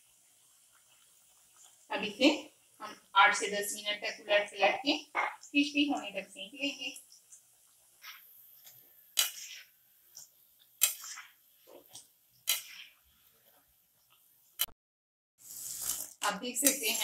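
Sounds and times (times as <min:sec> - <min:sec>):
frying in hot oil sizzling: 0:00.0 - 0:14.7, 0:15.4 - 0:17.0.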